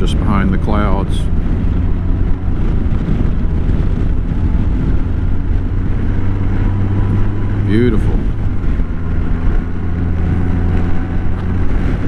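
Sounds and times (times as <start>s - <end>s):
motorcycle engine: 0.0s - 12.0s
road noise: 0.0s - 12.0s
wind noise on microphone: 0.0s - 12.0s.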